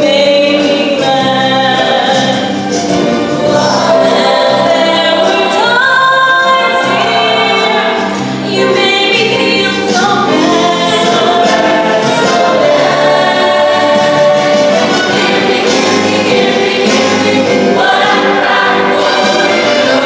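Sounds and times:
choir singing: 1.1 - 20.0.

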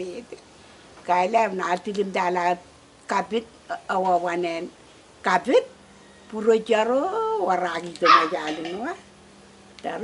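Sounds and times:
elderly woman telling a story: 0.0 - 0.4, 1.0 - 9.1, 9.8 - 10.0.

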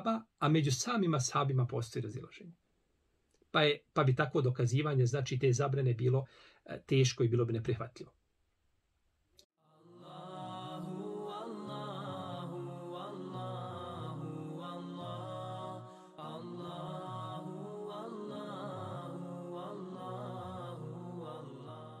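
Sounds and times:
chanted vocal music: 9.6 - 22.0.

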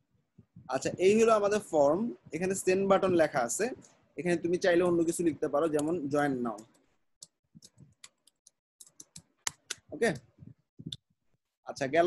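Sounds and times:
computer keyboard keystrokes: 5.8 - 9.8.

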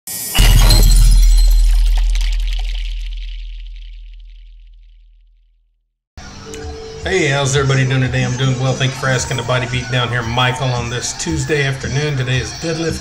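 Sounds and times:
sudden crash with glittering highs: 0.2 - 5.0
deep boom: 0.4 - 5.4.

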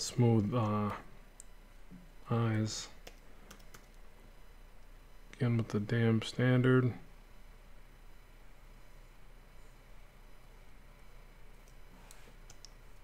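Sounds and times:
low room hum: 0.0 - 13.0
computer keys clicking: 3.0 - 4.0, 11.6 - 13.0.

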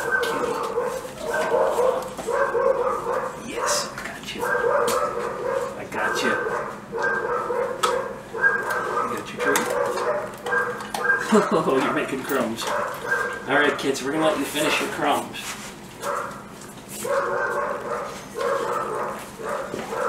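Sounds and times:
dogs barking: 0.0 - 13.9, 16.0 - 20.0.

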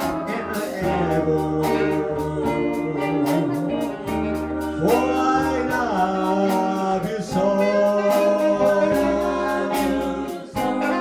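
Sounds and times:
band playing doo-wop ballad: 0.0 - 11.0
person singing: 0.0 - 11.0.

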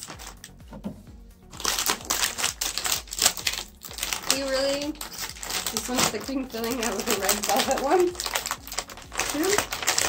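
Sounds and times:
plastic wrapper crinkling: 0.0 - 0.6, 1.5 - 10.0.

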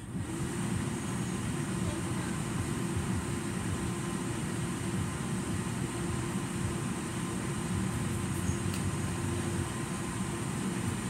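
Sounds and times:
air conditioning blower humming: 0.0 - 11.0.

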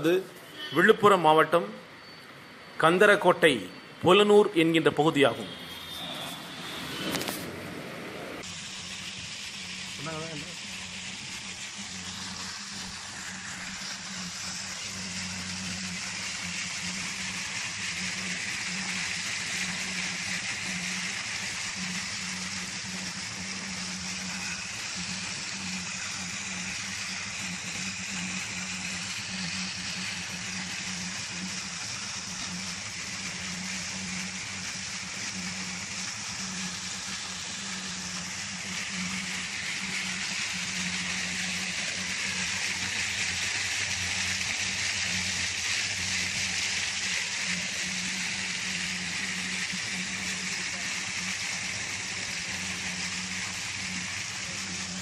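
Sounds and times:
low pump hum: 6.5 - 55.0
water gushing from a pipe: 8.4 - 55.0.

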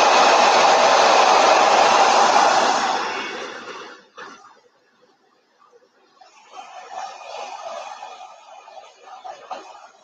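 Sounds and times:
hair dryer blowing air: 0.0 - 3.9.

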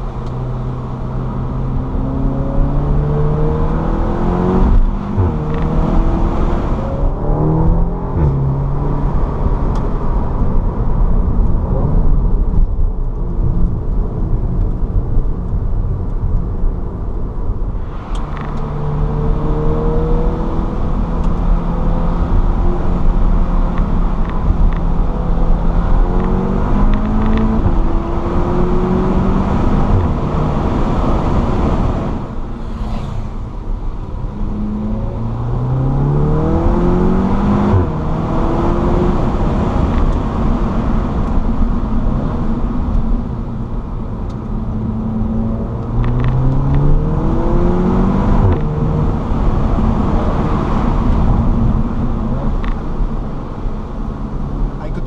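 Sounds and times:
car engine accelerating: 0.0 - 55.0
road noise: 0.0 - 55.0.

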